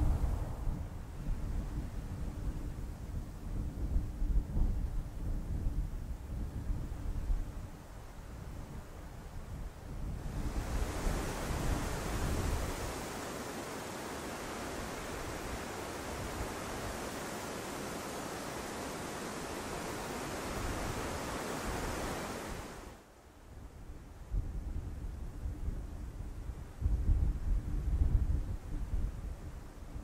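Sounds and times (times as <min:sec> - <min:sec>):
wind buffeting microphone: 0:00.0 - 0:22.9, 0:23.5 - 0:30.0
wind rushing through trees: 0:00.0 - 0:30.0.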